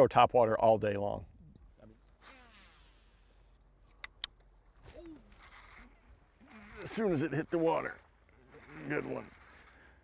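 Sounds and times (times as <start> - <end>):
sharp clicks: 3.6 - 4.5.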